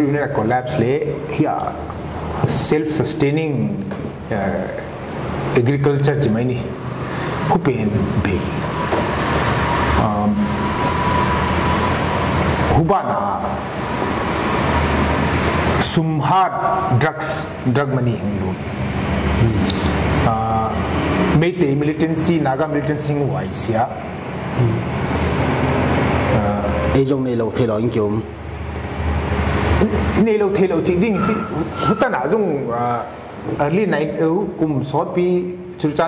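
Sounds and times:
rushing background noise: 0:00.0 - 0:36.0
person speaking: 0:19.3 - 0:25.1, 0:29.7 - 0:36.0.

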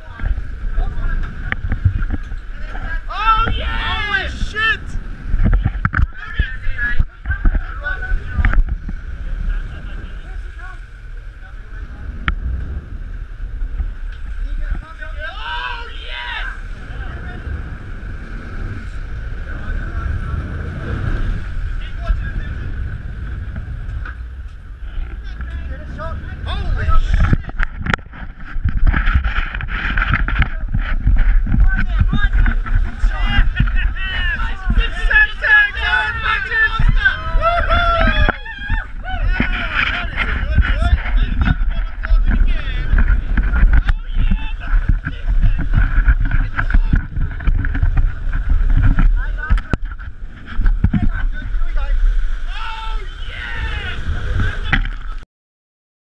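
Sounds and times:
raised crew voices: 0:00.0 - 0:12.8, 0:13.7 - 0:28.0, 0:30.3 - 0:55.2
boat engine running: 0:00.0 - 0:55.2
rushing and splashing water: 0:00.0 - 0:55.2
wind on microphone: 0:00.0 - 0:55.2.

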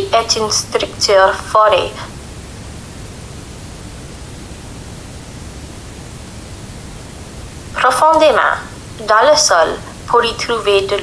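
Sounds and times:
steady hiss: 0:00.0 - 0:11.0
low rumble: 0:01.6 - 0:09.0.

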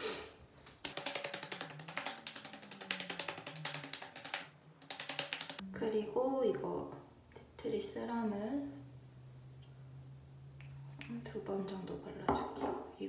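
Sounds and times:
rapid keyboard-like clicking: 0:00.8 - 0:05.6.

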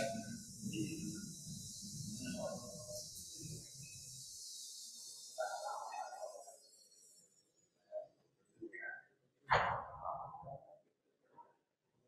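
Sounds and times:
faint indistinct voices: 0:00.0 - 0:11.8.

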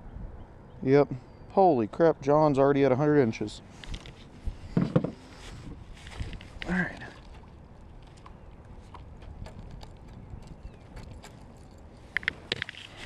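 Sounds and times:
water and wind rumble: 0:02.8 - 0:13.0
fishing rod clicks and ticks: 0:07.3 - 0:12.9.

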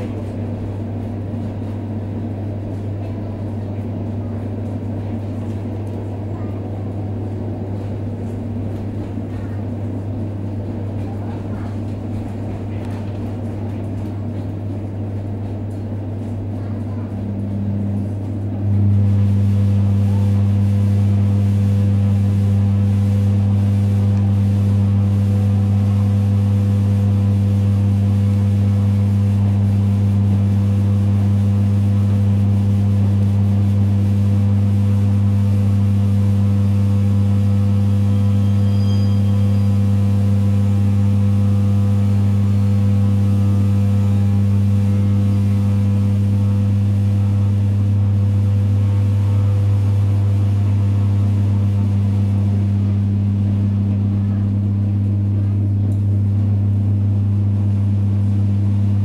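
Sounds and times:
low electric hum: 0:00.0 - 0:59.0.

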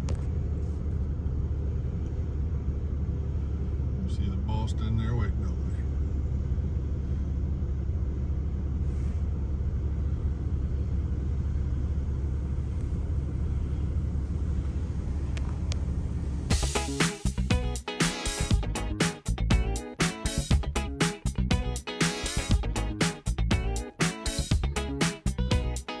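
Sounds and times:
vehicle driving rumble: 0:00.0 - 0:17.8
rhythmic music: 0:16.5 - 0:26.0.

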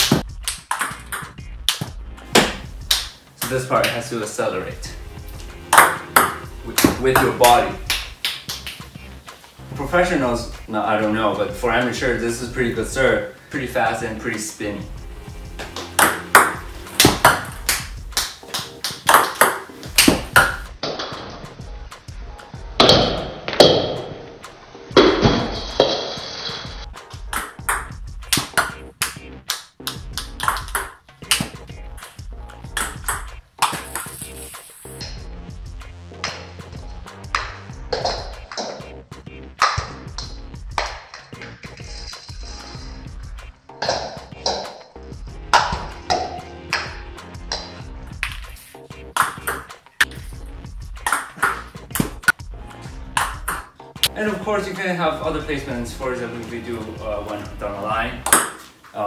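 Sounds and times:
background music: 0:00.0 - 0:59.0
table tennis ball clicking: 0:00.4 - 0:01.9.

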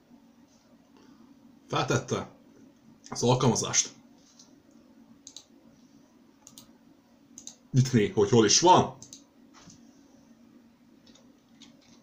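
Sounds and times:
faint low hum: 0:00.0 - 0:12.0
computer mouse clicks: 0:04.3 - 0:05.5, 0:06.4 - 0:06.7, 0:07.4 - 0:07.6, 0:09.0 - 0:09.3, 0:11.0 - 0:12.0.

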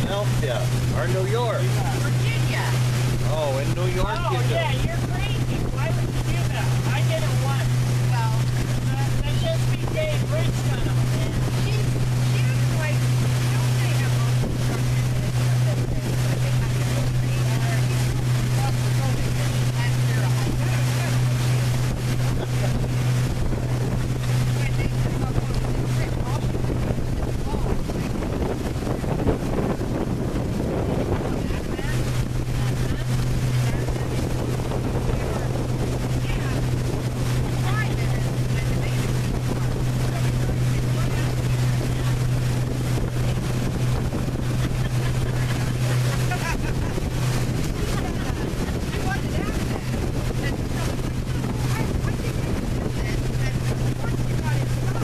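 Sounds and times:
boat motor droning: 0:00.0 - 0:55.0
water rushing past hull: 0:00.0 - 0:55.0
wind buffeting microphone: 0:00.0 - 0:55.0.

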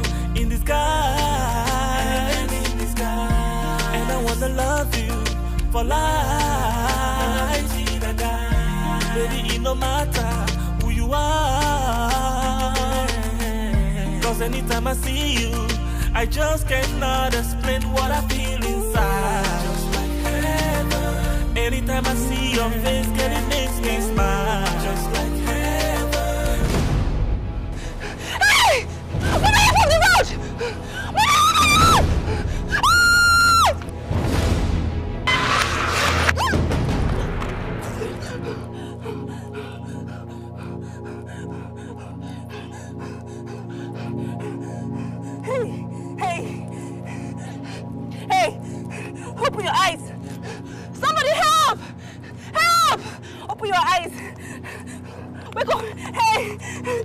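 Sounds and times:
film score music: 0:00.0 - 0:57.0
person crying out and gasping: 0:27.8 - 0:33.8, 0:37.8 - 0:57.0
person screaming: 0:28.3 - 0:32.1, 0:32.7 - 0:33.8, 0:51.0 - 0:51.9, 0:52.6 - 0:54.1.

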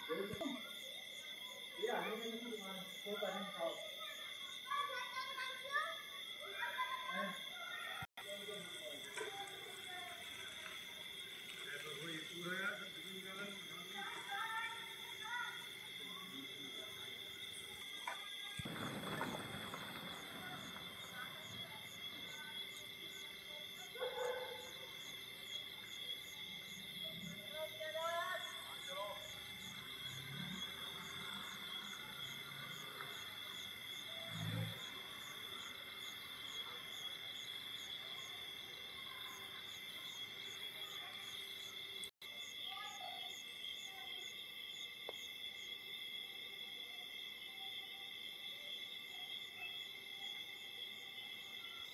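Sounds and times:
crickets and insects chirping: 0:00.0 - 0:51.9
faint voices: 0:01.7 - 0:25.8.

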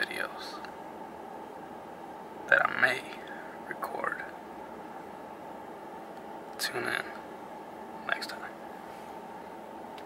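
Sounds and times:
steady low hum: 0:00.0 - 0:10.0
man whispering: 0:08.0 - 0:08.6.

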